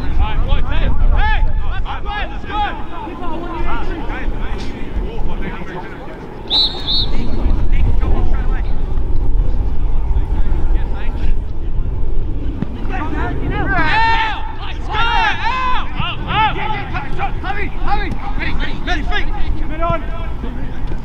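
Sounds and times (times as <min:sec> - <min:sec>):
steady low rumble: 0:00.0 - 0:21.0
players shouting short calls: 0:06.5 - 0:07.3.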